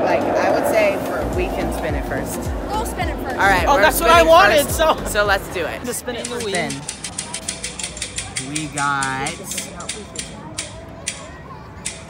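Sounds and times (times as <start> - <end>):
spinning wheel ticking clicks: 6.2 - 12.0.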